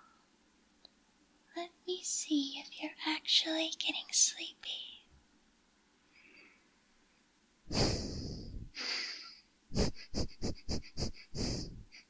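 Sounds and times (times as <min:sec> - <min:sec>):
person sniffing: 0:07.7 - 0:11.8.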